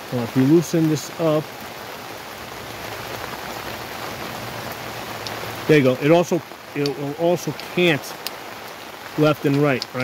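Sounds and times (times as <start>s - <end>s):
steady rain: 0.0s - 10.0s.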